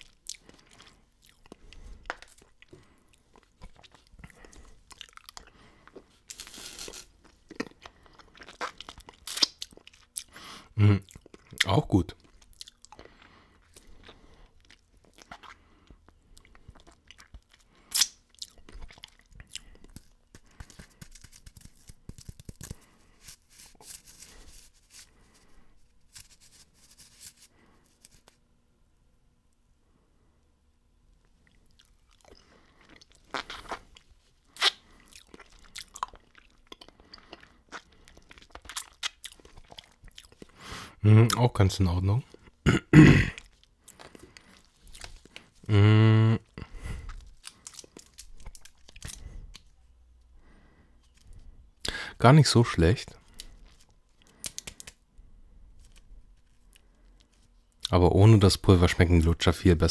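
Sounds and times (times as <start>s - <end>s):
crunching hard candy: 0.0s - 28.4s, 31.7s - 40.6s, 42.2s - 49.7s.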